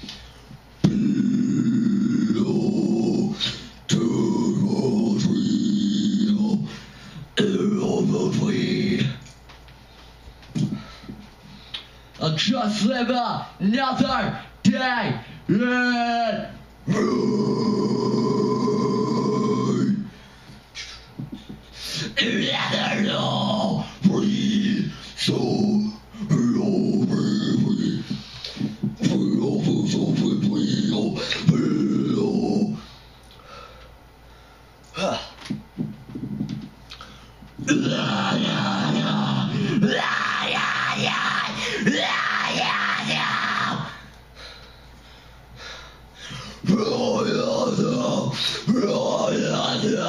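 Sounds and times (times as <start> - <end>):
guttural vocal growls: 0.8 - 6.7, 16.9 - 20.1, 37.6 - 44.0, 46.6 - 50.0.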